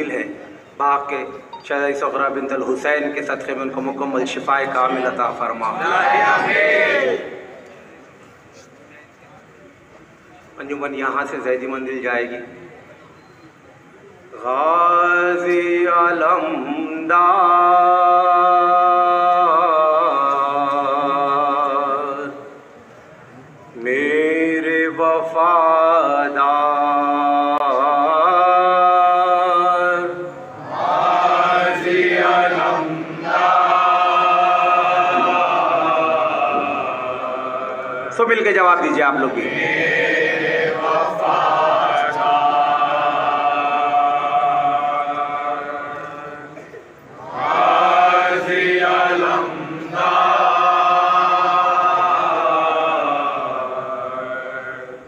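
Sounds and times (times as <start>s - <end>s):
men chanting a lament: 1.9s - 7.5s, 14.4s - 22.5s, 23.8s - 55.0s.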